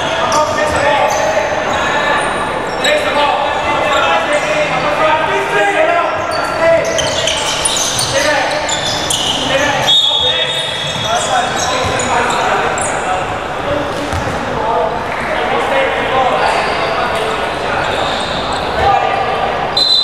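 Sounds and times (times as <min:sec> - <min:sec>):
sneakers squeaking: 0:00.0 - 0:04.9, 0:06.0 - 0:14.6, 0:16.5 - 0:19.2
ball bouncing on wooden court: 0:11.8 - 0:12.1, 0:14.1 - 0:14.4.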